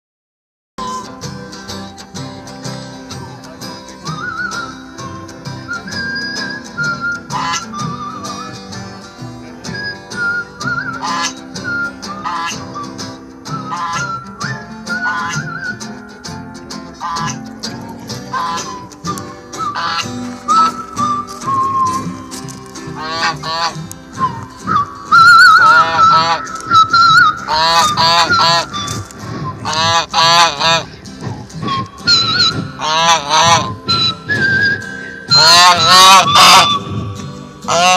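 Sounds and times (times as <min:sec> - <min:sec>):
strummed acoustic guitars: 0:00.8 - 0:37.9
wavering lead melody with vibrato: 0:00.8 - 0:37.9
goose honking: 0:07.3 - 0:07.8, 0:11.0 - 0:11.4, 0:12.2 - 0:12.6, 0:13.6 - 0:14.2, 0:15.0 - 0:15.6, 0:17.0 - 0:17.4, 0:18.3 - 0:18.8, 0:19.6 - 0:20.7, 0:22.9 - 0:24.0, 0:25.1 - 0:31.0, 0:31.7 - 0:34.3, 0:35.2 - 0:36.9, 0:37.6 - 0:37.9.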